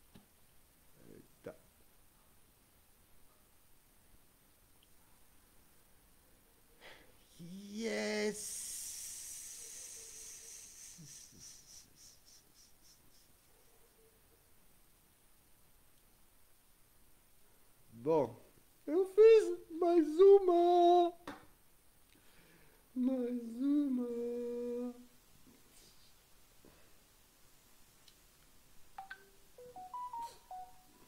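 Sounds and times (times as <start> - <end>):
faint high-pitched pulsing hiss: 0.0 - 31.0
person humming: 7.2 - 13.4, 18.9 - 21.2, 23.0 - 25.2.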